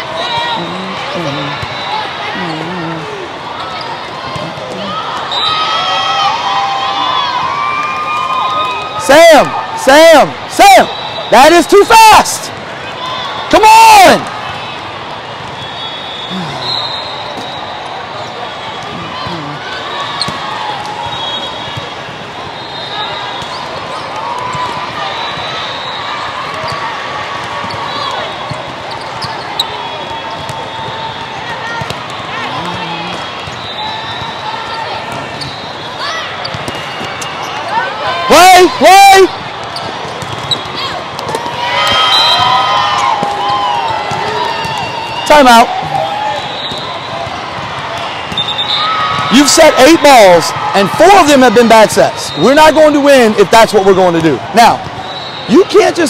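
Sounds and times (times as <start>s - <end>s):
loud shouts: 0.0s - 14.5s, 37.3s - 39.5s, 40.6s - 56.0s
burst of crowd voices: 0.0s - 56.0s
hubbub of many voices: 0.0s - 56.0s.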